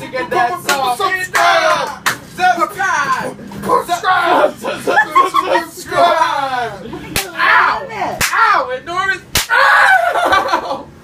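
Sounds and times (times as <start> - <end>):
open-hand slap: 9.3 - 9.6.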